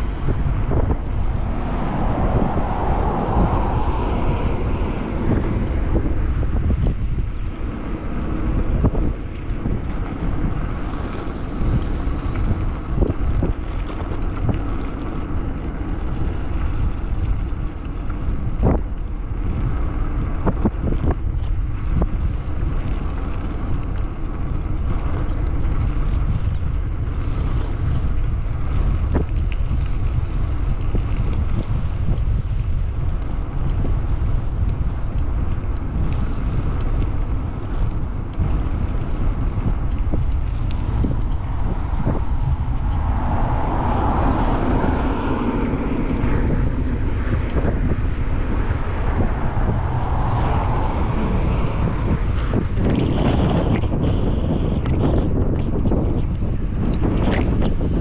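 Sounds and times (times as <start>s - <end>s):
car passing: 0.0s - 19.4s, 37.2s - 55.2s
wind buffeting microphone: 0.0s - 58.0s.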